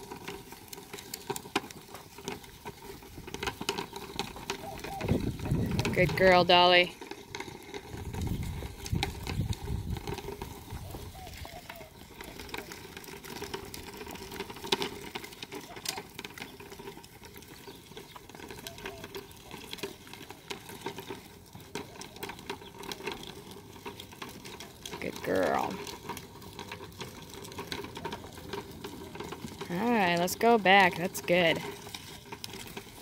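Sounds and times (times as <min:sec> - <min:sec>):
hooves on sand: 0:00.0 - 0:33.0
poles dragging on ground: 0:00.0 - 0:33.0.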